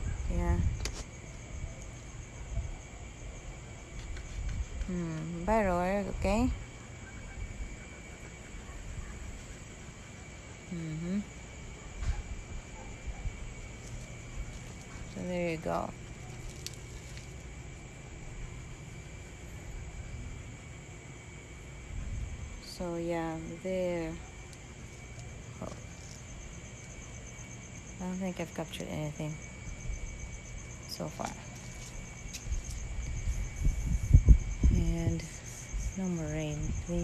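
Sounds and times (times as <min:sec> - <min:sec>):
wind rumble on microphone: 0:00.0 - 0:01.8, 0:03.9 - 0:07.8, 0:21.8 - 0:24.0, 0:32.3 - 0:37.0
insects chirring: 0:00.0 - 0:37.0.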